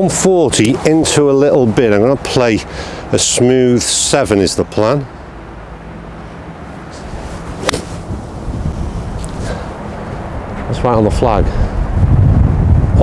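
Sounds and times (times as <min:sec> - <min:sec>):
golf club hitting ball: 0:07.6 - 0:08.3.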